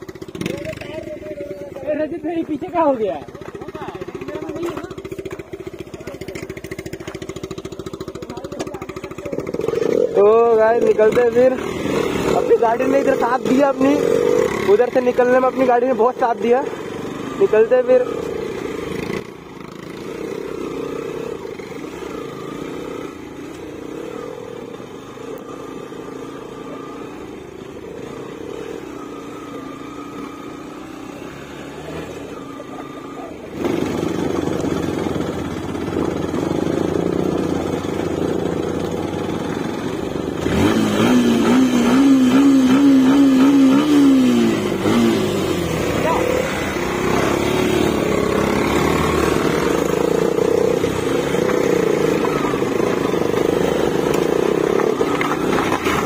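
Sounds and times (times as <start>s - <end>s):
motorcycle engines running: 0.0s - 56.0s.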